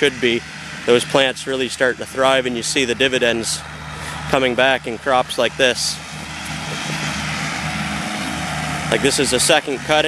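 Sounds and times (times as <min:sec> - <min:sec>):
tractor diesel engine droning: 0:00.0 - 0:10.0.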